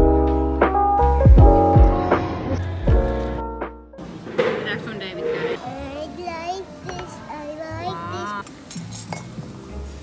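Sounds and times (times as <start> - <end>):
background music: 0.0 - 10.0
glassware and cutlery clinking: 8.4 - 9.6.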